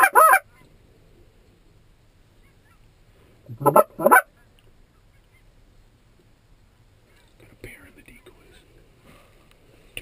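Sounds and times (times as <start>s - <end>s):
goose call honk: 0.0s - 0.6s, 3.5s - 4.3s.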